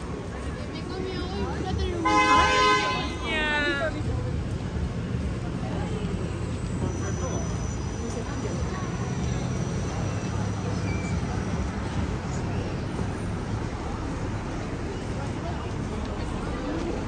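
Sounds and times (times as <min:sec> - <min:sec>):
street noise: 0:00.0 - 0:17.0
vehicle horn: 0:02.0 - 0:03.3.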